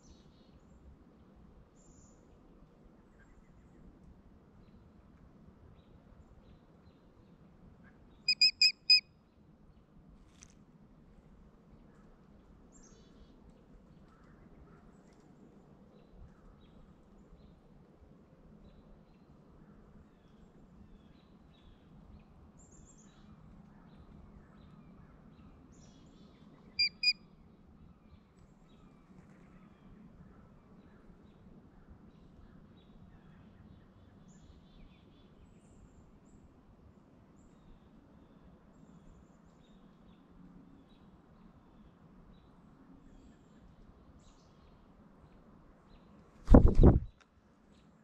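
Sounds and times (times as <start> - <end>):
faint outdoor background noise: 0.0 - 48.0
bird calling high notes: 8.3 - 9.0, 26.8 - 27.2.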